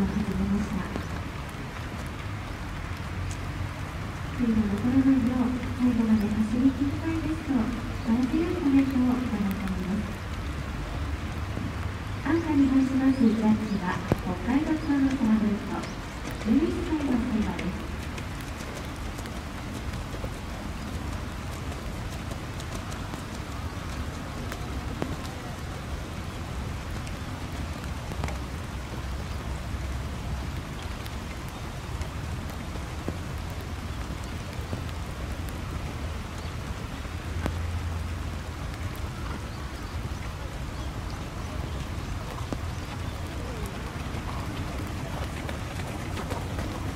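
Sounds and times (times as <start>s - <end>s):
steady rain falling: 0.0s - 46.9s.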